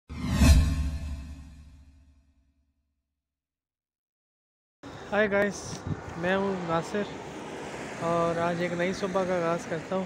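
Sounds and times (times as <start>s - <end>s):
whoosh with deep rumble: 0.1s - 1.9s.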